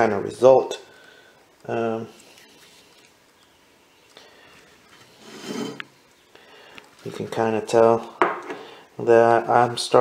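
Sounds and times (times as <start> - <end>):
breath: 0.9 - 1.4, 4.2 - 4.8, 6.3 - 6.9, 8.5 - 8.9.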